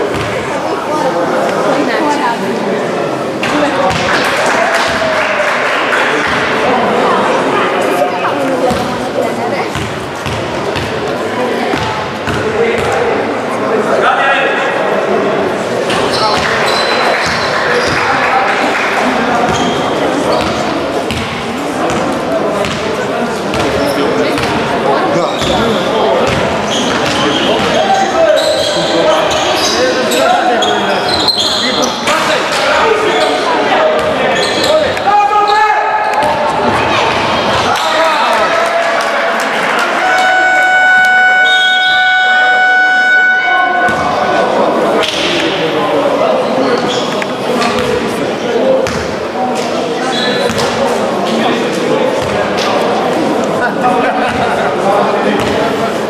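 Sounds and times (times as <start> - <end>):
voices shouting in hall: 3.5 - 8.3, 25.2 - 47.2
scoreboard horn: 39.9 - 44.4.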